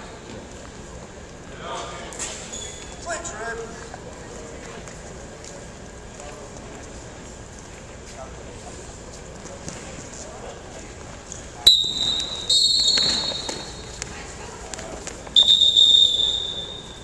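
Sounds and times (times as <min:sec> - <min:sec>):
referee's whistle blasts: 0:11.6 - 0:13.8, 0:15.4 - 0:17.0.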